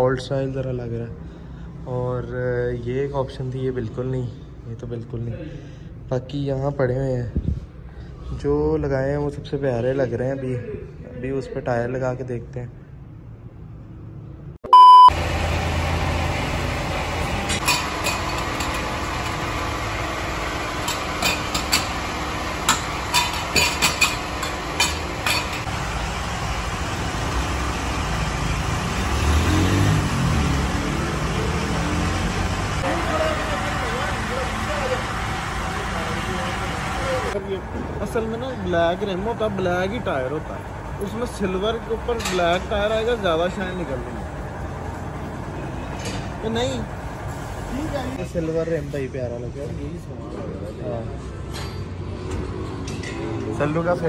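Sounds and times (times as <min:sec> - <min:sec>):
low engine rumble: 0:15.1 - 0:51.3.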